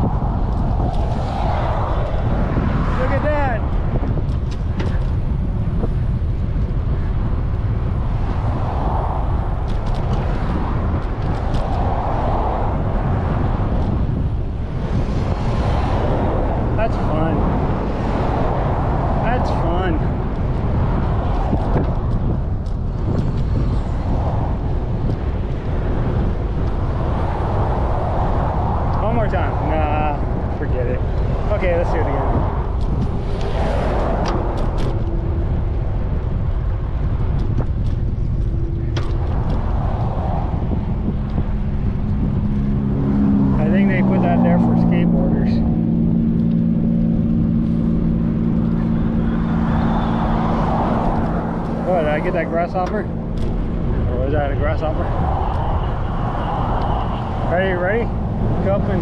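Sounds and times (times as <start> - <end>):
road traffic: 0.0 - 59.0
wind rushing over microphone: 0.0 - 59.0.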